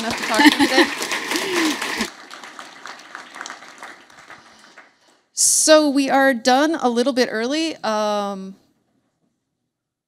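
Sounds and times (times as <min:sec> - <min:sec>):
audience applause: 0:00.0 - 0:05.2.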